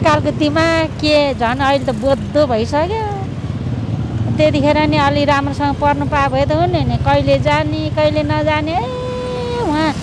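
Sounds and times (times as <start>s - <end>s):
street traffic rumble: 0.0s - 10.0s.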